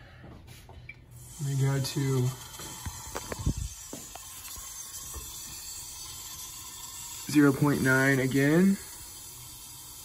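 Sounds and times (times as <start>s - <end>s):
hose water running into sink: 1.2s - 10.0s.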